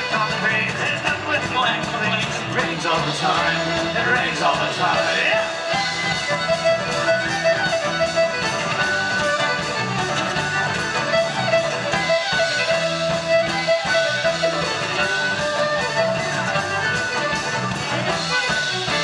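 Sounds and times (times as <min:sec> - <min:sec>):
electric bass and guitar: 0:00.0 - 0:19.0
fiddle melody: 0:00.0 - 0:19.0.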